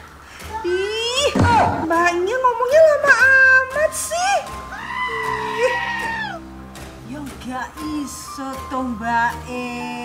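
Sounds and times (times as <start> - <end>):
background music: 0.0 - 10.0
woman's high whining cry: 4.7 - 6.4.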